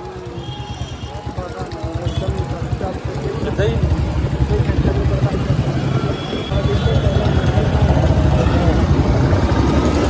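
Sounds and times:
motorcycle running: 0:00.0 - 0:10.0.

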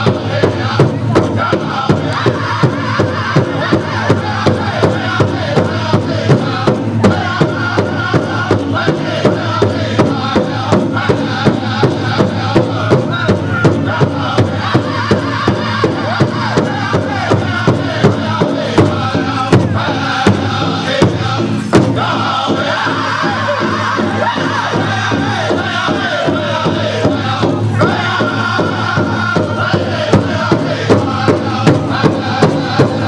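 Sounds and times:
drum group singing: 0:00.0 - 0:33.0
steady drumbeat: 0:00.0 - 0:33.0.

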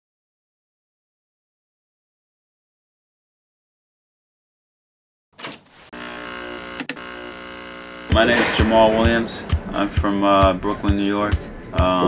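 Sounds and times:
steady electronic buzz: 0:05.9 - 0:11.8.

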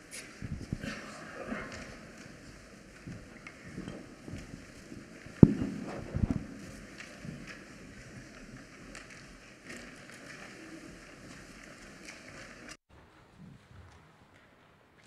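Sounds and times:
soft footsteps and shuffling: 0:00.0 - 0:15.0.

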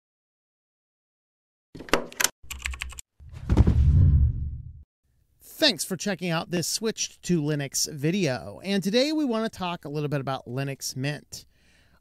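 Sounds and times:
low whoosh: 0:03.3 - 0:04.8.

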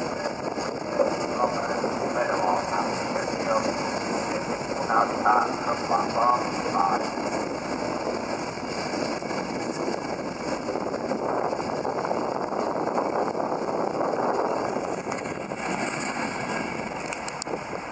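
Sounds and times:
train wheels rushing on rails: 0:00.0 - 0:17.9.

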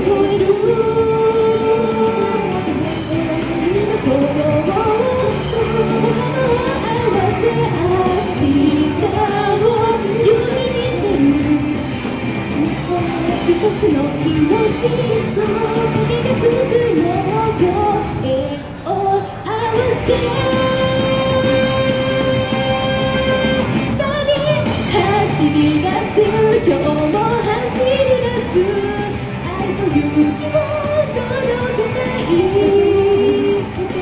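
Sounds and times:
pop backing track over speakers: 0:00.0 - 0:34.0
woman singing into a microphone: 0:00.0 - 0:34.0.

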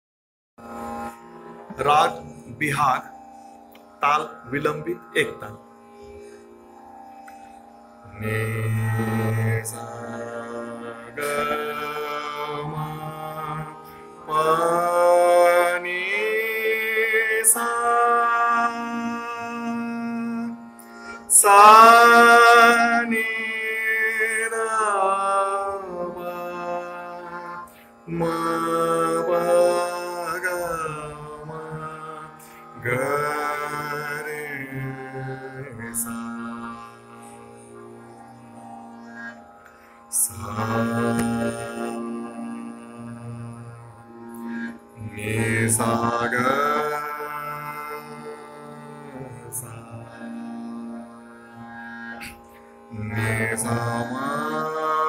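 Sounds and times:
steady drone: 0:00.6 - 0:55.0
man singing classical vocals: 0:01.7 - 0:03.1, 0:08.1 - 0:38.6, 0:40.1 - 0:44.3, 0:45.0 - 0:51.6, 0:52.9 - 0:55.0.

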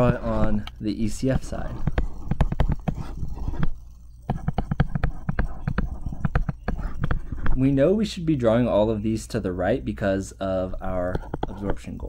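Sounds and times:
stylus tapping on tablet screen: 0:01.8 - 0:07.6, 0:11.1 - 0:11.8.

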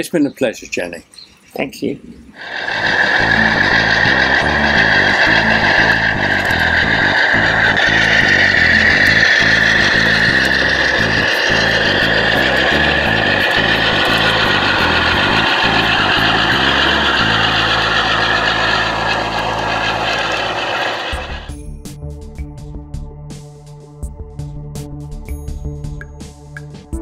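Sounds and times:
wheel clicks: 0:02.4 - 0:21.5
steady high whine: 0:02.4 - 0:21.6
model diesel locomotive engine: 0:02.4 - 0:21.7.

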